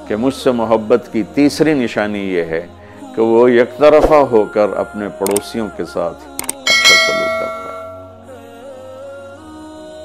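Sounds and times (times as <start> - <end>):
soft background music: 0.0 - 10.0
bright bell ding: 6.4 - 8.3.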